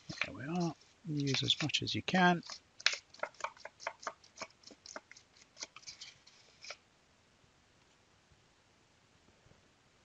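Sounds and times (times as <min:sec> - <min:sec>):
metal spoon scraping a bowl: 0:02.4 - 0:06.8.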